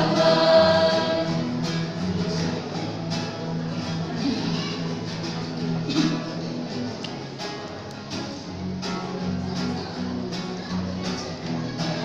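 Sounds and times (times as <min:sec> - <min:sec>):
strummed acoustic guitar chords: 0:00.0 - 0:12.0.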